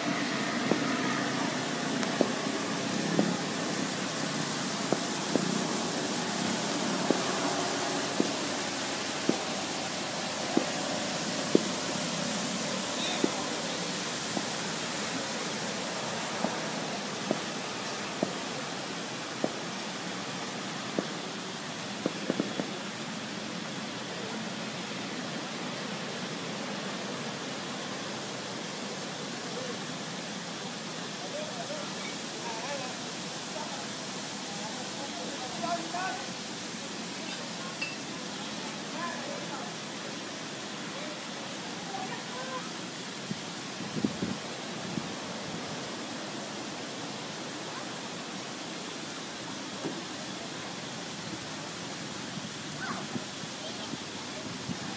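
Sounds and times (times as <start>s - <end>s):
faint distant voices: 0.0s - 54.9s
outdoor hiss: 0.0s - 54.9s.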